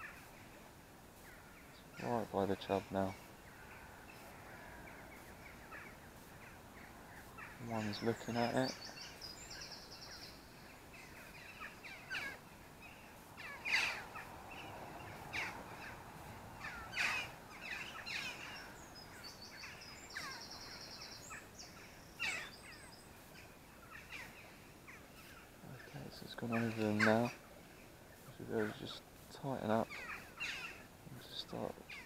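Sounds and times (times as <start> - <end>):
birds chirping: 0.0 - 32.0
rapid high bird trill: 7.2 - 12.5, 13.1 - 16.0, 16.6 - 27.4.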